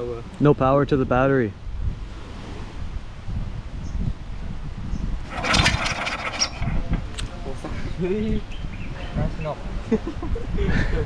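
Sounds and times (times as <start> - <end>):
engine cranking without starting: 5.3 - 6.9.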